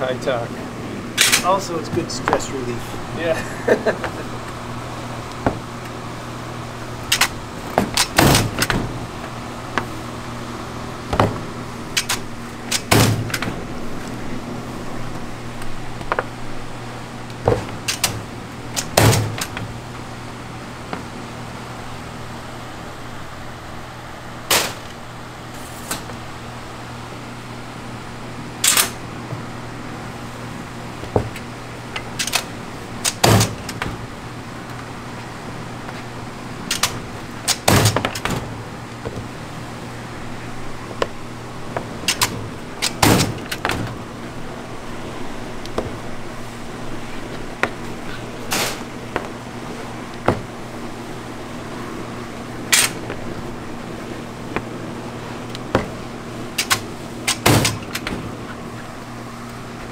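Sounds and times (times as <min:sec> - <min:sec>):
candy machine humming: 0:00.0 - 0:59.9.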